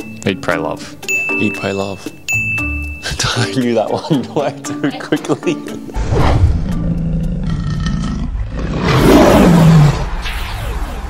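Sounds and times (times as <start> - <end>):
lion roar: 6.0 - 10.1.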